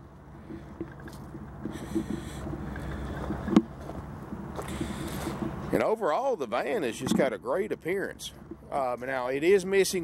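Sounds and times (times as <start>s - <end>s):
footsteps on gravel: 0.4s - 6.0s.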